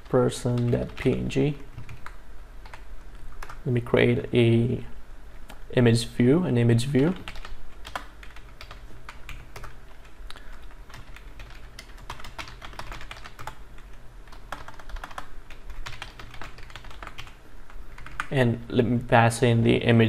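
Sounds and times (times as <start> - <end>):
low steady hum: 0.0 - 20.0
typing on computer keyboard: 0.5 - 2.8, 7.2 - 9.8, 10.5 - 13.6, 14.3 - 17.4, 18.0 - 18.3.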